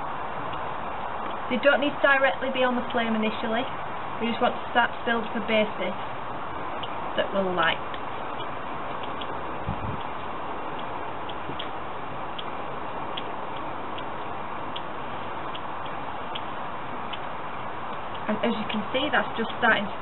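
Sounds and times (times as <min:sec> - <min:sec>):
faint ticks: 0:10.0 - 0:19.7.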